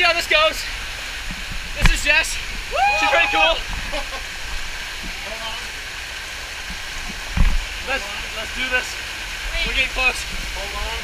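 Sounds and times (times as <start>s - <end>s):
water rushing down rocks: 0.0s - 11.0s.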